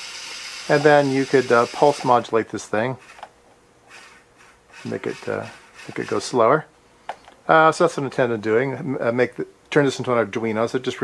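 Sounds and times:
small motor whine: 0:00.0 - 0:02.2, 0:03.9 - 0:06.2.

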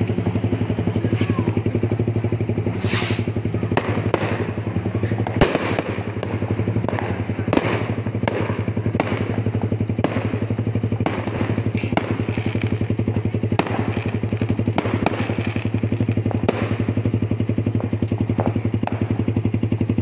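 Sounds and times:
exhaust backfiring pops: 0:00.0 - 0:20.0
motorcycle engine running: 0:00.0 - 0:20.0.

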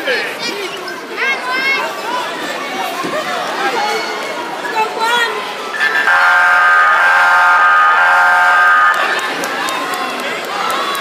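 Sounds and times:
loud buzzer blast: 0:05.7 - 0:09.1.

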